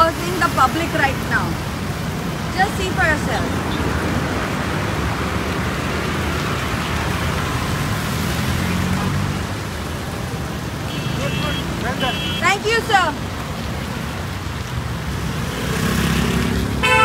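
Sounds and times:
car engines running: 0.0s - 17.0s
tyre hiss on wet asphalt: 0.1s - 17.0s
vehicle passing close: 3.3s - 9.8s, 14.8s - 17.0s.

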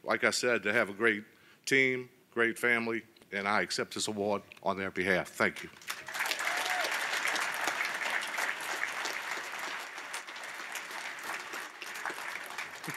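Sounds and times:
audience applauding: 5.8s - 12.9s.

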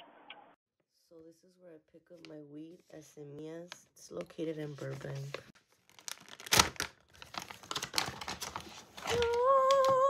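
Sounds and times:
foil packaging crinkling: 4.8s - 9.8s.

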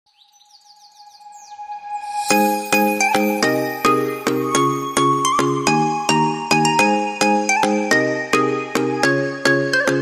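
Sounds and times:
bird-like chirps: 0.1s - 4.7s.

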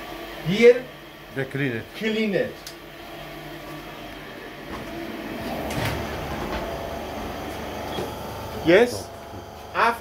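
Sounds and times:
dry-cleaning machine humming: 0.0s - 10.0s.

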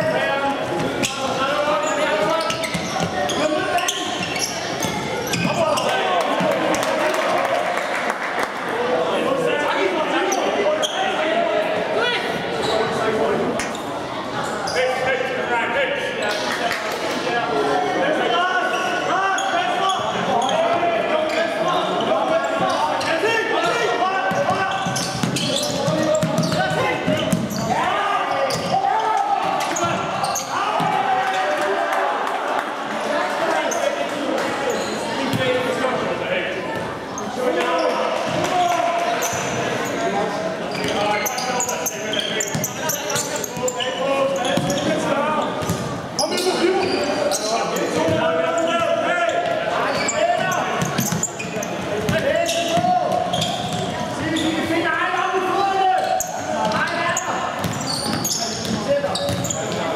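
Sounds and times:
players shouting: 18.0s - 35.7s.

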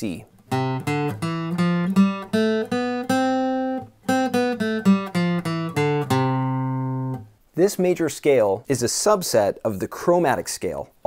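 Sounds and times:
guitar playing a scale: 0.4s - 7.3s.

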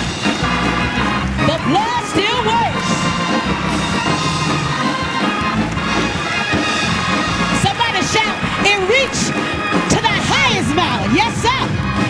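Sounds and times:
church band gospel music: 0.0s - 12.0s
drum kit: 0.0s - 12.0s
held keyboard chords: 0.0s - 12.0s.

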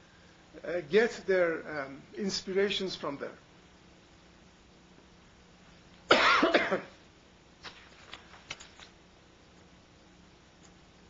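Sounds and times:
paper sheets rustling: 7.6s - 9.0s.

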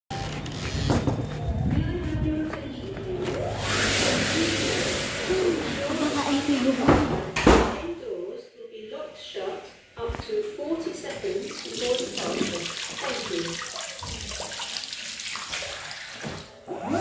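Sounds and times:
muffled voices: 1.2s - 12.7s.

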